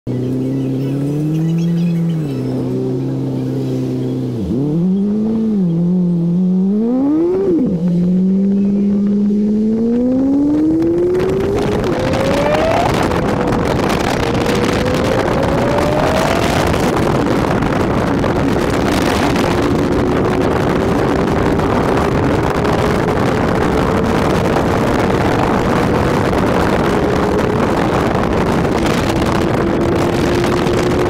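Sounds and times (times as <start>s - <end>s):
wind and road noise: 0.0s - 31.0s
car engine accelerating: 0.1s - 31.0s.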